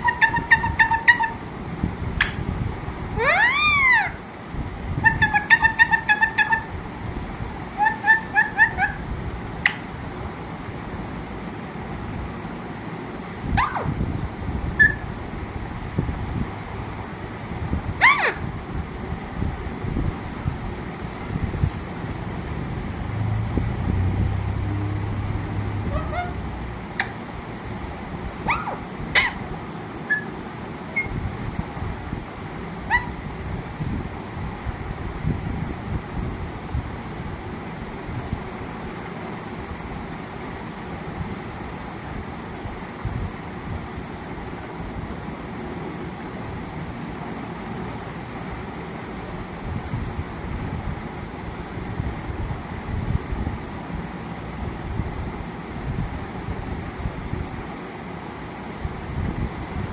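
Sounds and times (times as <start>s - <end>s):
parakeet calls: 0.0s - 1.5s, 2.2s - 2.4s, 3.2s - 4.2s, 5.0s - 6.8s, 7.7s - 10.0s, 13.5s - 14.0s, 14.8s - 15.2s, 18.0s - 18.5s, 25.8s - 27.2s, 28.4s - 31.2s, 32.8s - 33.2s.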